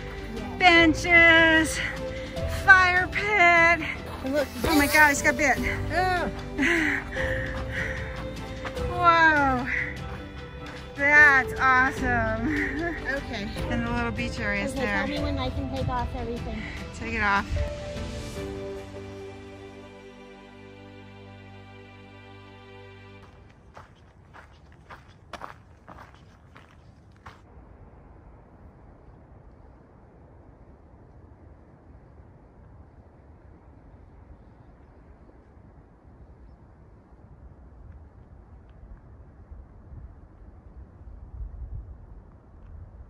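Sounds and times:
wind rumble on microphone: 0:00.0 - 0:18.4, 0:23.3 - 0:43.0.

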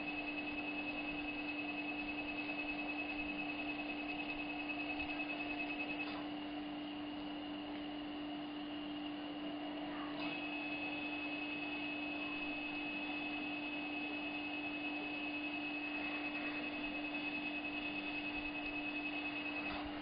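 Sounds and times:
dental laser high-pitched beeping: 0:00.0 - 0:06.2, 0:10.2 - 0:20.0.

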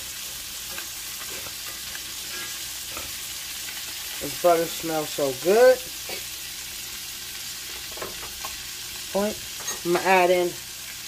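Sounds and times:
fish sizzling in melted butter: 0:00.0 - 0:11.0.

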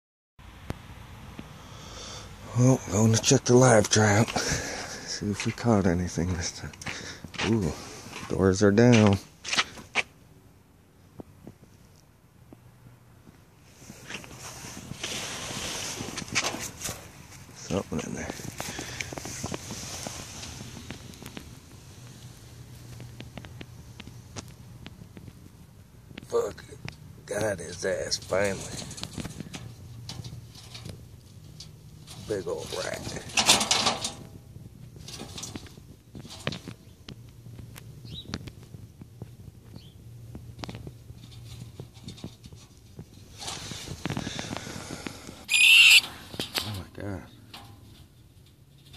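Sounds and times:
footsteps on stone path: 0:04.2 - 0:05.7, 0:06.7 - 0:10.1
rustling: 0:13.6 - 0:26.2, 0:28.0 - 0:48.9
rat squeak: 0:45.5 - 0:46.1.

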